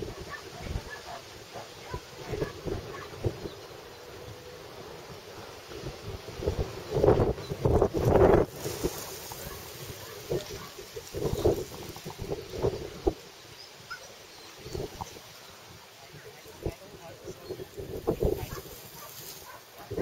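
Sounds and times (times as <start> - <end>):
wind gusting on microphone: 0.0 - 20.0.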